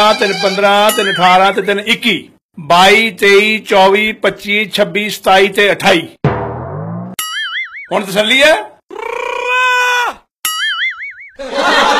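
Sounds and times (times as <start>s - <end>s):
wobbling cartoon boing: 6.4s - 7.9s, 10.5s - 11.4s.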